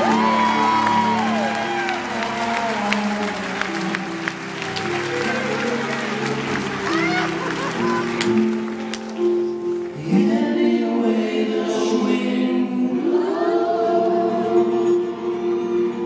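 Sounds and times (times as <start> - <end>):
singers harmonizing held notes: 0.0 - 16.0.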